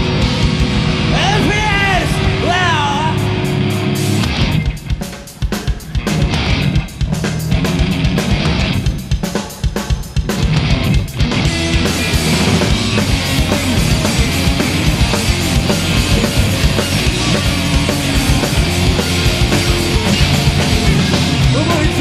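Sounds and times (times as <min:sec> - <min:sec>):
distorted electric guitar: 0:00.0 - 0:22.0
drum kit: 0:00.0 - 0:22.0
rock band playing live: 0:00.0 - 0:22.0.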